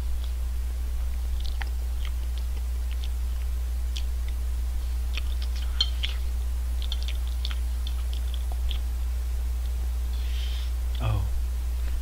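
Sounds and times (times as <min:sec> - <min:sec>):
low hum: 0:00.0 - 0:12.0
person chewing: 0:01.0 - 0:08.9
wet mouth clicks: 0:01.4 - 0:04.4, 0:05.1 - 0:06.2, 0:06.8 - 0:08.8.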